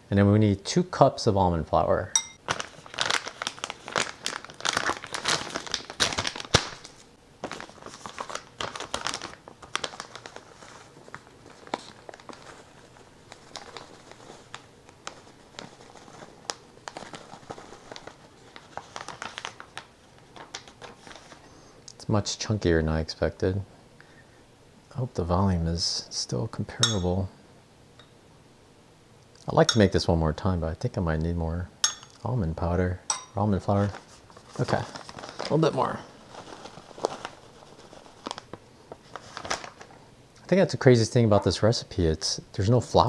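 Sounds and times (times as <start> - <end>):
paper bag crinkling: 2.4 - 21.5, 33.6 - 40.0.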